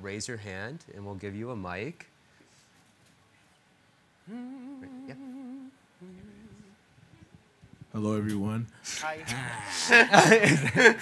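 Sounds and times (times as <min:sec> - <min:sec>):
person humming: 0:04.2 - 0:06.8, 0:09.2 - 0:10.2.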